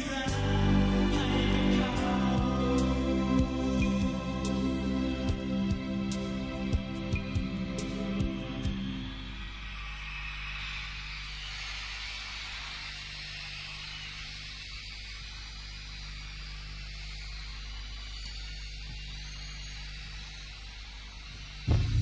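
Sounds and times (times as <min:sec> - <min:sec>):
loud music: 0:00.0 - 0:09.4, 0:21.7 - 0:22.0
low electrical mains hum: 0:00.0 - 0:22.0.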